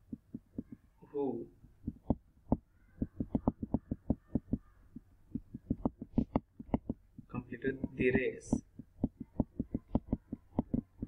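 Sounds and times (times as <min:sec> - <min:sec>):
stylus knocking on writing tablet: 0:00.0 - 0:00.8, 0:01.8 - 0:11.0.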